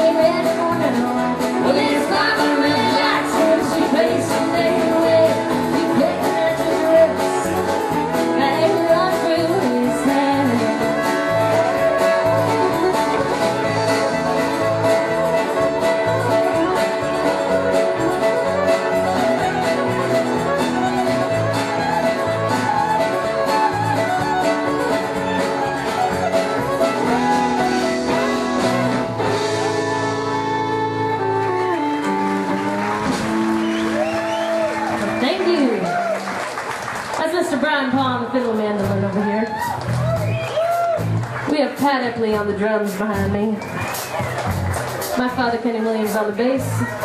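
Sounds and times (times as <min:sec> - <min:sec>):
fiddle: 0:00.0 - 0:36.4
bass: 0:00.0 - 0:47.0
drums: 0:00.0 - 0:47.0
electric guitar: 0:00.0 - 0:47.0.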